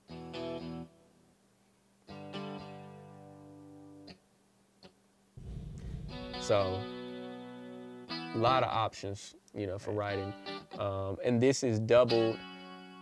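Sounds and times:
sampled guitar chords: 5.4 - 7.3.

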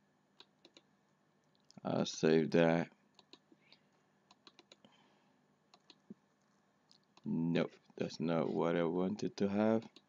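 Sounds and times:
mouse and keyboard clicks: 0.4 - 0.9, 3.2 - 4.9, 5.7 - 6.2.

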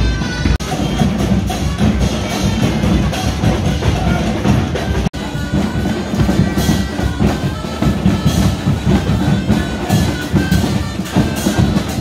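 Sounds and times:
steady drumbeat: 0.0 - 12.0.

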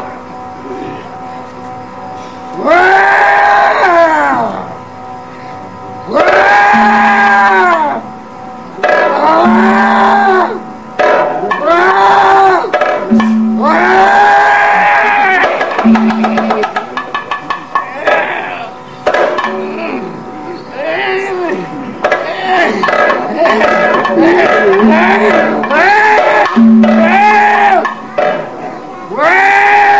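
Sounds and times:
steady held tone: 0.0 - 29.9
rapid percussion strikes: 6.2 - 8.2, 8.8 - 12.1, 12.7 - 19.9, 22.0 - 28.7.

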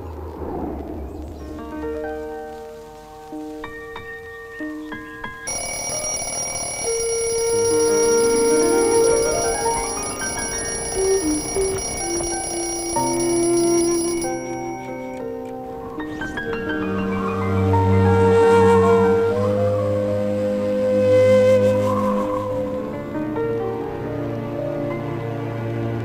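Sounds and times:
alarm clock ringing: 5.5 - 15.2.

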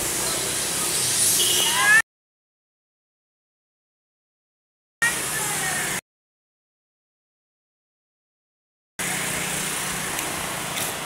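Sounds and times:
street noise hiss: 0.0 - 2.0, 5.0 - 6.0, 9.0 - 11.0
engine hum: 9.0 - 11.0.

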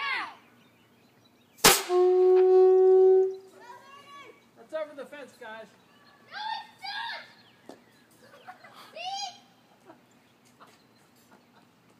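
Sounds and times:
children shouting in the distance: 3.4 - 4.4.

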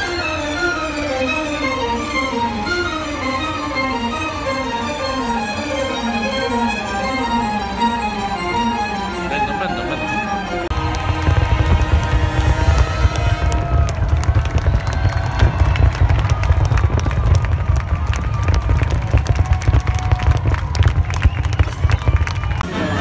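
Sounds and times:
orchestral music: 0.0 - 21.2, 22.6 - 23.0
fireworks booming and crackling: 10.7 - 22.6.

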